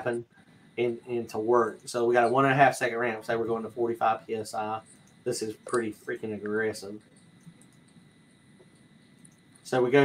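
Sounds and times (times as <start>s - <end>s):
background hiss: 0.0s - 10.0s
faint high whine: 0.0s - 10.0s.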